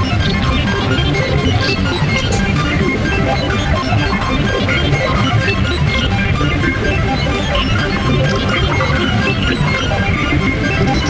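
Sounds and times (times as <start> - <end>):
electronic synthesizer music: 2.0 - 3.6, 8.1 - 11.0.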